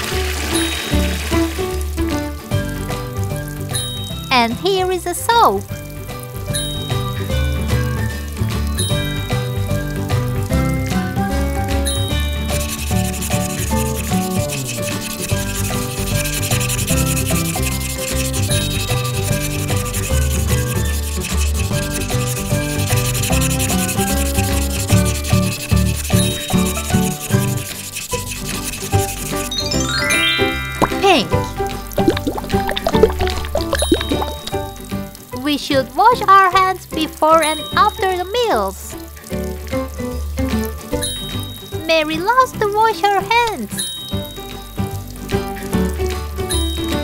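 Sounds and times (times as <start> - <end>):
background music: 0.0 - 47.0
marker scratching on paper: 12.5 - 29.6.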